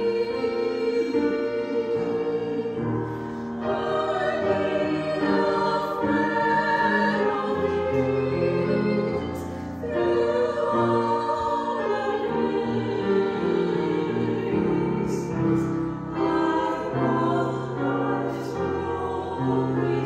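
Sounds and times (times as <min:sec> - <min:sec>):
piano accompaniment: 0:00.0 - 0:20.0
small group singing a hymn: 0:00.0 - 0:20.0.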